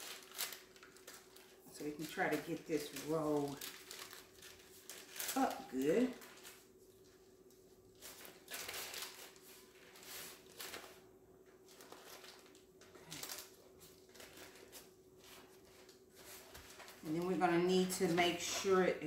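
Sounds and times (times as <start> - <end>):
faint steady hum: 0.0 - 19.0
parchment paper crinkling: 0.0 - 19.0.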